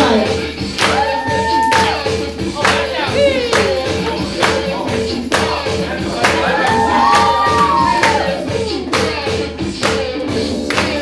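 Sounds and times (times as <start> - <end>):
music with drum beat and singing: 0.0 - 11.0.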